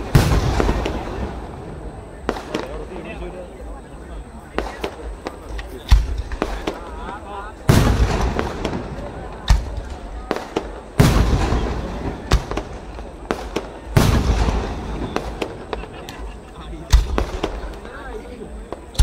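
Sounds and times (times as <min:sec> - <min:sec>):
firework bangs and cracks: 0:00.0 - 0:03.2, 0:04.5 - 0:19.0
firework shells booming: 0:00.0 - 0:03.2, 0:04.5 - 0:19.0.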